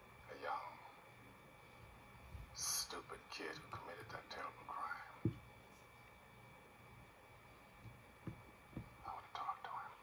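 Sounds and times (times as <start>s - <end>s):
man speaking from television: 0.2s - 0.9s, 2.5s - 5.3s, 9.0s - 10.0s.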